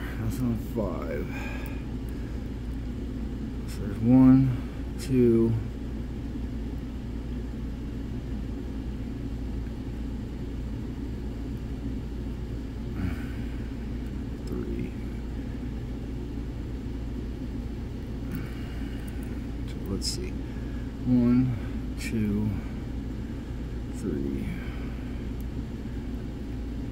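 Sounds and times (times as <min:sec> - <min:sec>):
low mechanical hum: 0:00.0 - 0:26.9.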